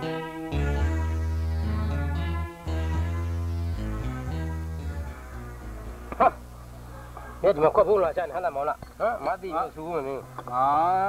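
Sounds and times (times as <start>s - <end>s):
background music: 0.0s - 8.0s.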